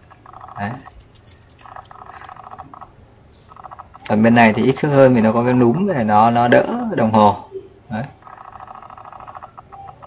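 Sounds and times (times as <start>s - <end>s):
watch handling clicks: 0.9s - 2.3s.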